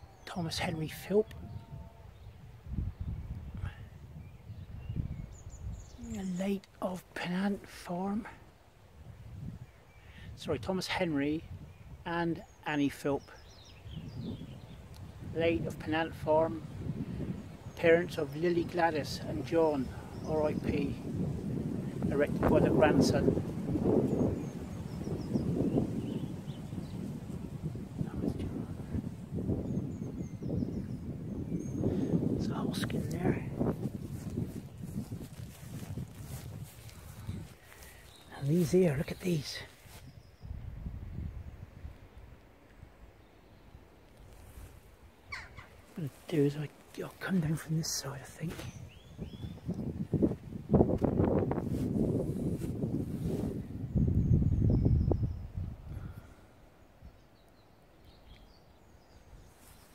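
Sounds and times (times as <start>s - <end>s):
wind buffeting microphone: 0.0s - 6.5s, 8.9s - 10.8s, 11.4s - 12.1s, 13.3s - 57.4s
footsteps through long grass: 32.2s - 40.3s, 44.0s - 45.1s, 45.7s - 47.6s, 48.5s - 53.9s, 59.4s - 59.9s
faint high bird chirps: 45.2s - 45.8s.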